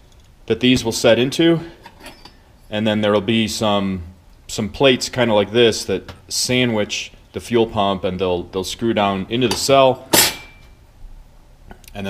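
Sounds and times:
metal plate clinking on workbench: 9.5s - 10.7s.

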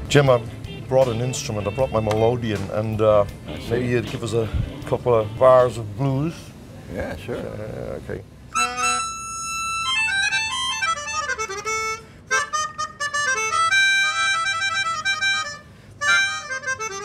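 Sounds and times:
keyboard melodica playing blues: 0.0s - 6.2s, 8.5s - 17.0s.

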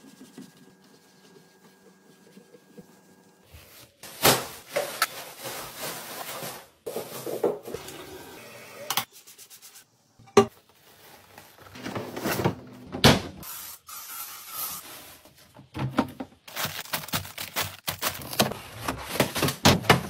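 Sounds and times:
wastebaskets being handled: 3.4s - 7.9s, 10.5s - 12.6s, 14.8s - 20.0s
plastic bags rustling: 3.5s - 7.8s, 10.6s - 12.2s, 16.4s - 20.0s.

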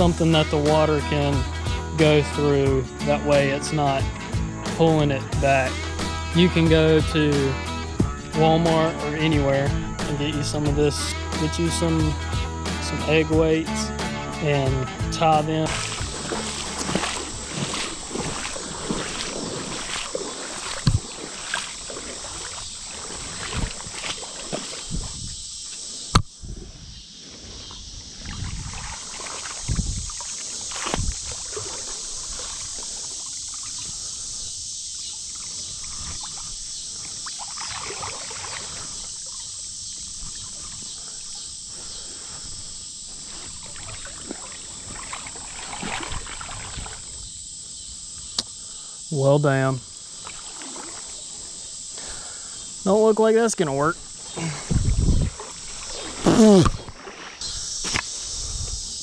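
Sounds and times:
low thumps: 4.0s - 8.6s, 14.7s - 21.2s
water sloshing and splashing: 15.5s - 26.2s, 27.6s - 47.3s, 49.9s - 52.1s, 53.5s - 58.1s.

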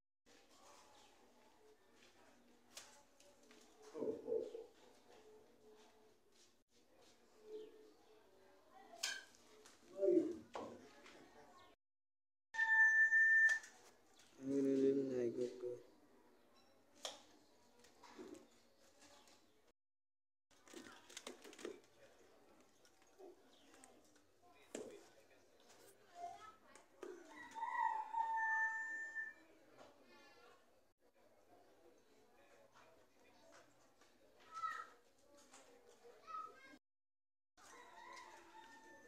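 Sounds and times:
electronic beep: 12.6s - 13.7s
rooster crowing: 27.4s - 29.4s, 37.8s - 39.0s.

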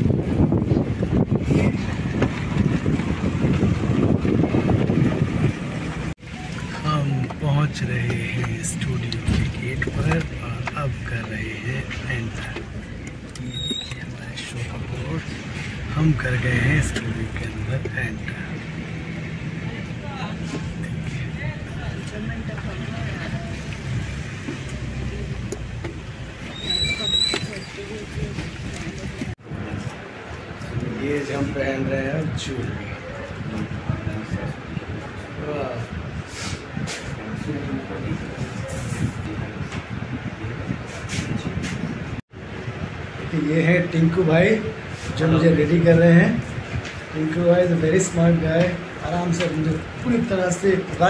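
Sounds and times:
wind buffeting microphone: 0.0s - 6.2s, 18.7s - 50.2s
car road rumble: 0.0s - 43.3s.

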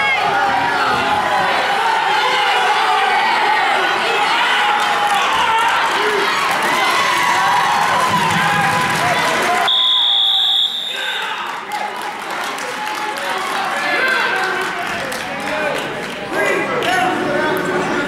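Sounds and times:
spectators shouting and cheering: 0.0s - 18.0s.

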